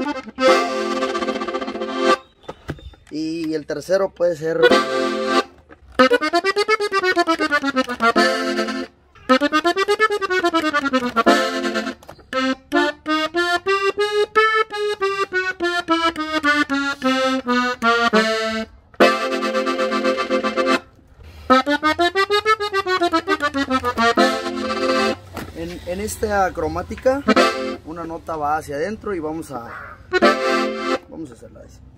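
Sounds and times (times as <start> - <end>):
button accordion playing runs: 0.0 - 2.3, 4.5 - 28.2, 30.1 - 31.1.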